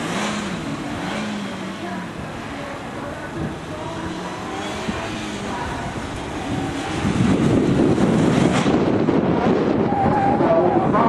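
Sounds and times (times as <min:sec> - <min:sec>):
distant car engine revving: 0:00.0 - 0:11.0
wind buffeting microphone: 0:02.0 - 0:11.0.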